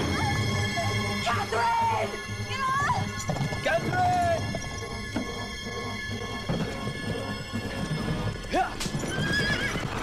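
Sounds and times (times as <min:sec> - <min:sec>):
film score music: 0:00.0 - 0:10.0
hoofbeats clattering: 0:02.5 - 0:10.0
horse whinnying: 0:08.4 - 0:10.0.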